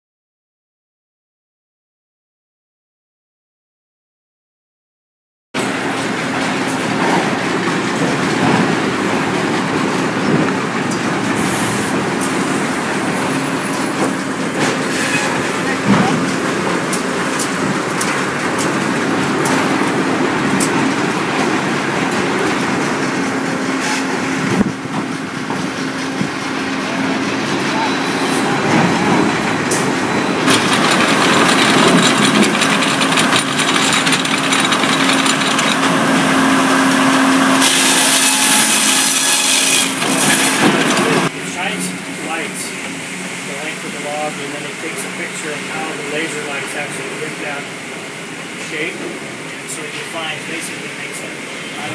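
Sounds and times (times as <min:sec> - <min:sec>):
sawmill machinery running: 0:05.6 - 0:51.9
chain conveyor and saw: 0:30.4 - 0:42.4.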